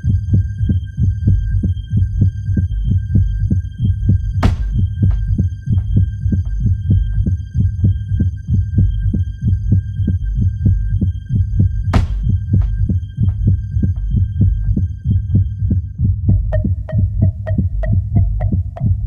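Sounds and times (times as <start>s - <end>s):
tech house music: 0.0s - 19.0s.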